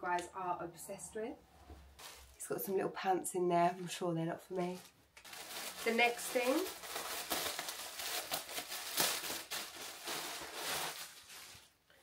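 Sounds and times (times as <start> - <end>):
plastic bag crinkling and ripping: 2.0 - 2.4, 4.6 - 11.8.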